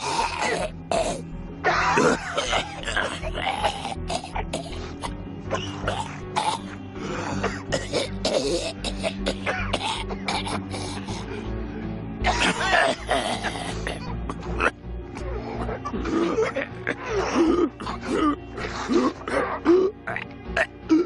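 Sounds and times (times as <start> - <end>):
zombie raspy throat noises: 0.0 - 11.4, 12.2 - 21.0
low film score drone: 0.0 - 21.0.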